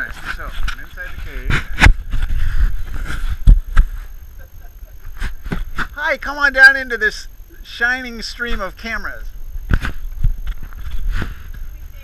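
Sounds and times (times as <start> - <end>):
camera handling rumble: 9.6 - 11.7.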